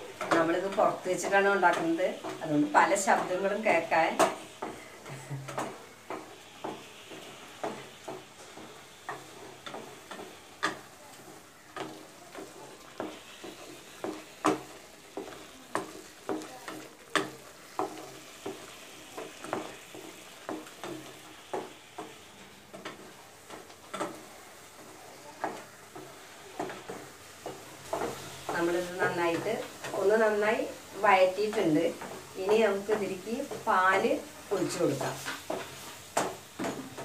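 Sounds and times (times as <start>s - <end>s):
faint sizzle of frying: 0.0s - 37.0s
spatula scraping a pan: 0.0s - 37.0s.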